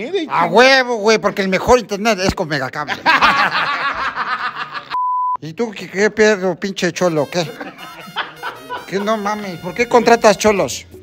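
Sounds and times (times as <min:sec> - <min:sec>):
men laughing: 0:02.8 - 0:05.0, 0:07.4 - 0:09.7.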